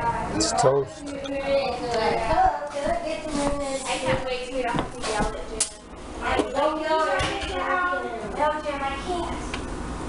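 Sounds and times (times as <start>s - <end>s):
voices talking: 0.0s - 9.4s.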